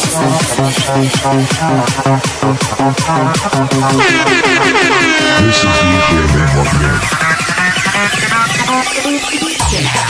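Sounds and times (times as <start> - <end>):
horn-like synth sliding down: 3.9 - 7.2.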